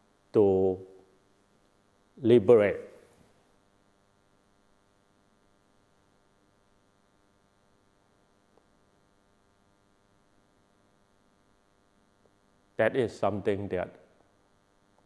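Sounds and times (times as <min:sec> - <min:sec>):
faint electrical hum: 0:00.0 - 0:15.0.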